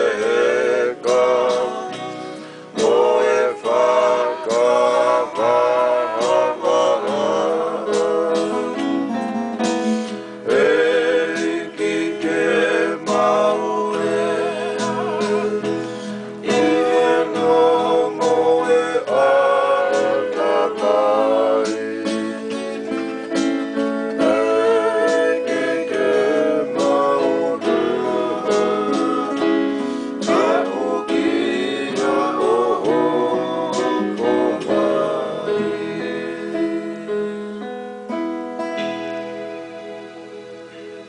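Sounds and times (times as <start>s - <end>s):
men singing together: 0.0s - 37.5s
electronic keyboard: 0.0s - 41.0s.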